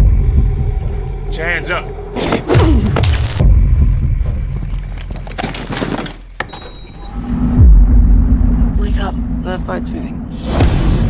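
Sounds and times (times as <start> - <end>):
low rumble: 7.1 - 11.0.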